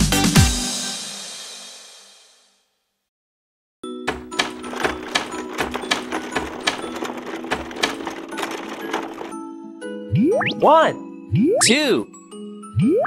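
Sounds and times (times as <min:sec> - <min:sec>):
rattling roller door clicks: 0:04.1 - 0:09.4.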